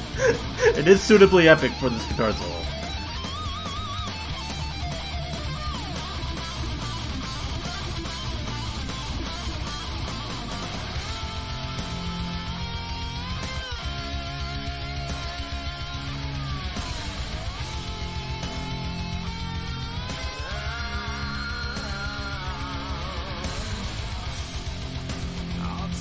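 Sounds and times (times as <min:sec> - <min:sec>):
electric guitar solo: 0:00.0 - 0:24.3
rock band backing: 0:00.0 - 0:26.0.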